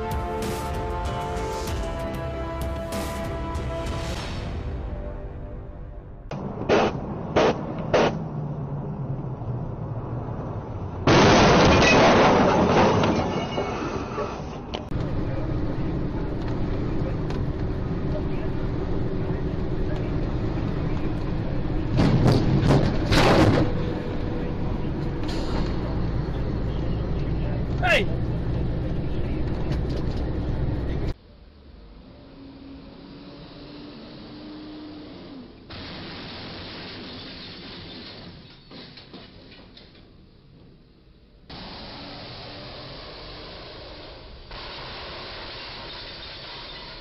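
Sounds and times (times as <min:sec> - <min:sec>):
vehicle engine drone: 0:00.0 - 0:38.7, 0:40.1 - 0:47.0.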